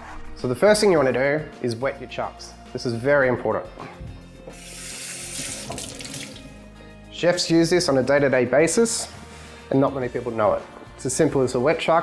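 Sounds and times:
tap running into sink: 4.6s - 6.4s.

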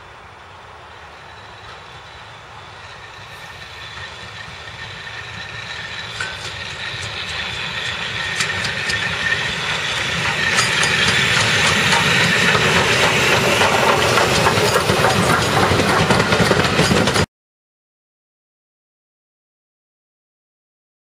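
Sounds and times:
steam hiss: 0.0s - 16.8s
steam train passing: 0.0s - 17.3s
wheels clicking on rails: 1.0s - 17.3s.

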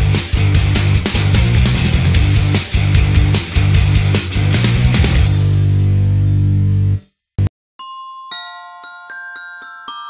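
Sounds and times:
rock music: 0.0s - 7.0s
bell-like mallet melody: 7.8s - 10.0s.

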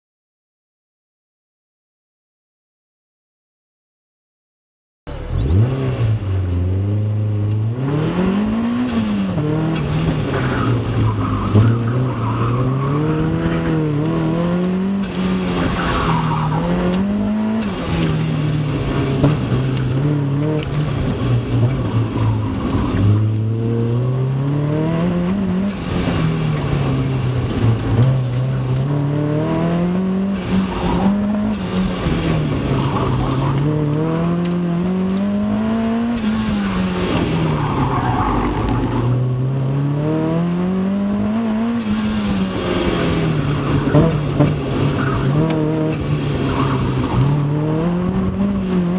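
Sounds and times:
car engine revving: 5.1s - 48.9s
tires squealing: 7.9s - 23.9s, 24.6s - 39.3s, 41.4s - 48.9s.

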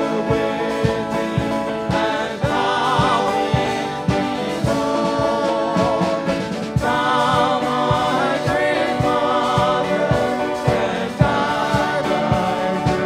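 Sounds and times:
band playing a steady beat: 0.0s - 13.0s
voices singing together: 0.0s - 13.0s.

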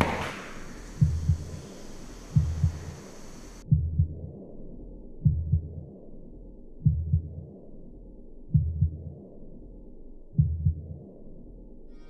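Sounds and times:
low hum: 0.0s - 10.8s
muffled heartbeat: 0.8s - 4.4s, 5.2s - 5.9s, 6.8s - 7.5s, 8.5s - 9.2s, 10.4s - 11.0s.

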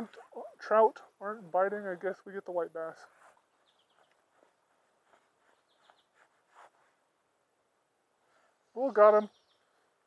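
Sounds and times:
faint short bird chirps: 5.5s - 6.3s.

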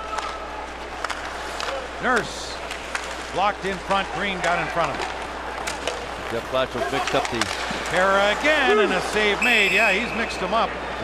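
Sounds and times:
hockey sticks and puck clacking: 0.0s - 10.2s
arena crowd noise: 0.0s - 11.0s.

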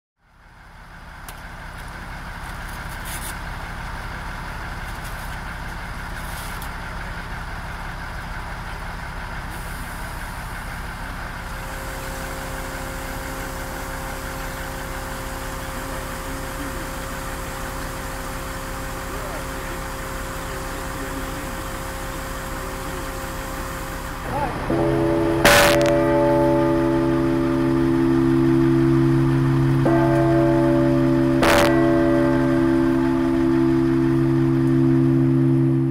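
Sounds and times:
crane engines running: 0.2s - 35.9s
multi-tone whine: 9.5s - 35.9s.

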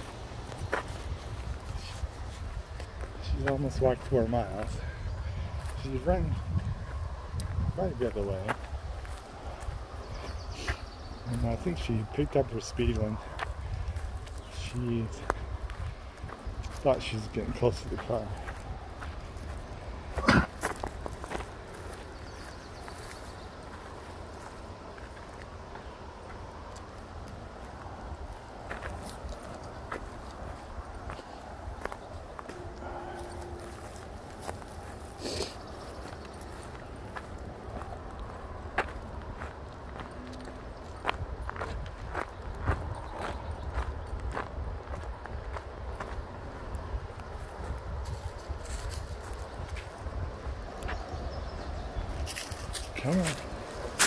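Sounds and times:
footsteps crunching on dirt trail: 0.0s - 54.0s.

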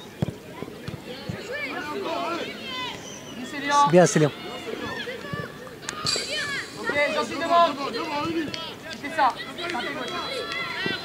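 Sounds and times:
people calling out outdoors: 0.0s - 11.0s.

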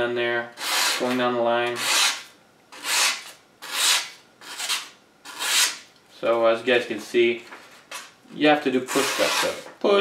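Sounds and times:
blade slicing paper: 1.8s - 5.8s, 8.9s - 9.7s.

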